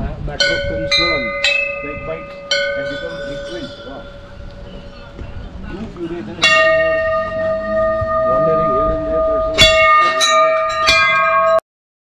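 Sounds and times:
brass bells ringing: 0.4 - 5.1, 6.3 - 11.6.

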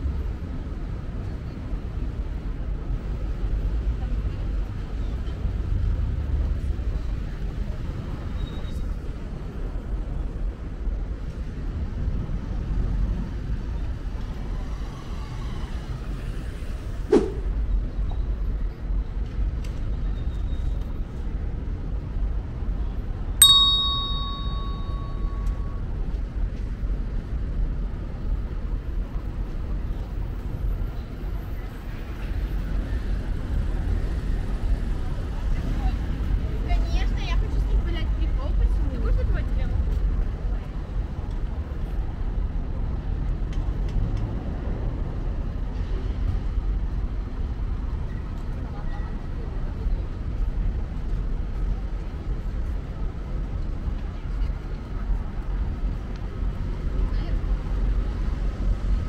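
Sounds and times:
bright metallic ding: 23.4 - 25.7.

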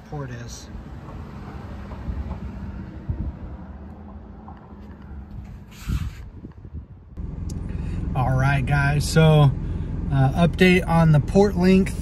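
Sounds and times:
low outdoor rumble: 2.1 - 12.0
steady low hum: 6.9 - 12.0.

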